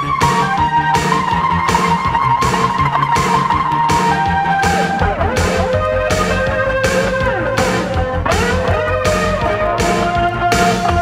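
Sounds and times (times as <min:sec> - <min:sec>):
bass: 0:00.0 - 0:11.0
steady drum beat: 0:00.0 - 0:11.0.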